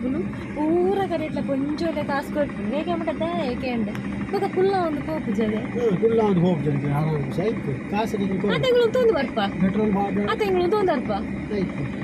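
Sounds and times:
woman talking: 0.0 - 5.8, 8.5 - 9.6, 10.3 - 11.3.

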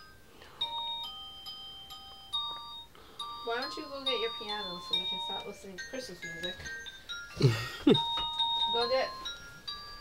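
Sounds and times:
bell-like musical notes: 0.0 - 10.0.

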